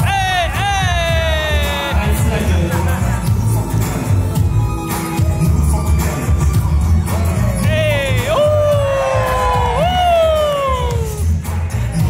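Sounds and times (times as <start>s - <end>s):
heavy bass beat: 0.0s - 12.0s.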